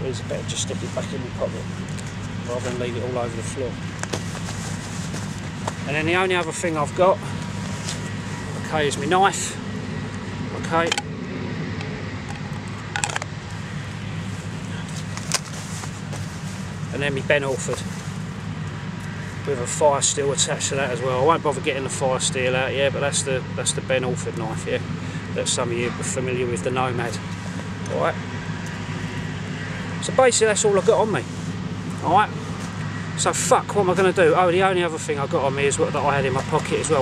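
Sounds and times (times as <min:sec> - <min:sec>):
distant factory machinery hum: 0:00.0 - 0:37.0.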